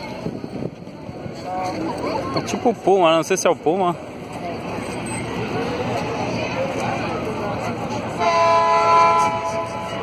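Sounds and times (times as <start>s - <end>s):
horn blast: 8.2s - 10.0s.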